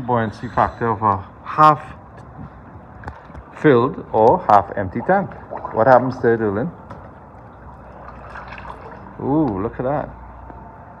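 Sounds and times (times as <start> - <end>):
pool water lapping: 0.0 - 10.0.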